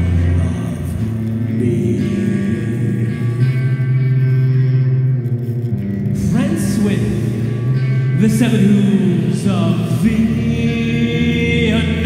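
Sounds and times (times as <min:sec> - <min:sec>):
live band holding low note: 0:00.0 - 0:12.0.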